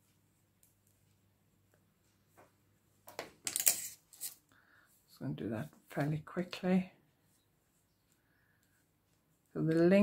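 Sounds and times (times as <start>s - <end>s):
woman speaking: 5.1s - 7.0s, 9.5s - 10.0s.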